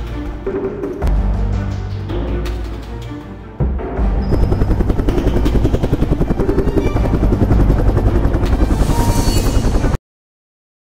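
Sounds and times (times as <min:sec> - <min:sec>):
rapid low pulsing music: 0:00.0 - 0:09.9.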